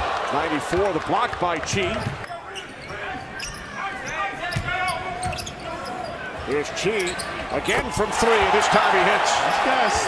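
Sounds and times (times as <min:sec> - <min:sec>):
sneakers squeaking: 0:01.7 - 0:07.6.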